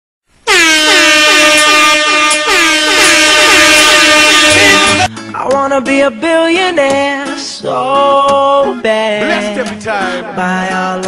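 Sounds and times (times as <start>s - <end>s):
air horn sound effect: 0.4s - 5.1s.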